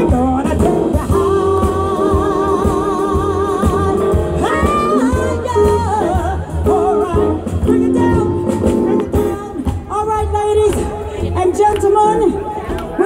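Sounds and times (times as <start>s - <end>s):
live soul band playing: 0.0s - 13.0s
woman singing with vibrato: 0.0s - 13.0s.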